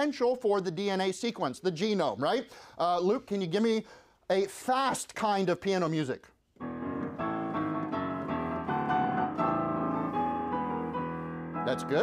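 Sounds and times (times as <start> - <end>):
fast piano playing: 6.6 - 12.0.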